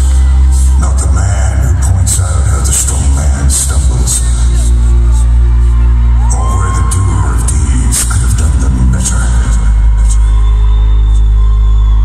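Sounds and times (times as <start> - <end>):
crowd cheering and screaming: 0.0 - 12.0
loud concert music with deep bass: 0.0 - 12.0
rising whistle-like tone: 9.8 - 12.0.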